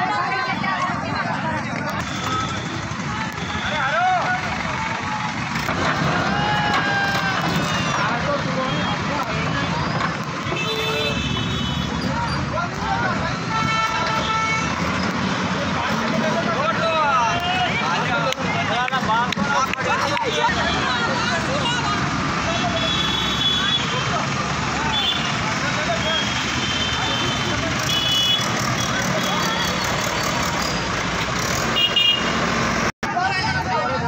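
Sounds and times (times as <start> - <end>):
crowd voices talking: 0.0 - 31.6, 33.0 - 34.0
backhoe engine running: 0.8 - 10.5
vehicle horn blasts: 10.5 - 12.0, 22.7 - 24.0, 26.6 - 29.4, 31.7 - 32.4.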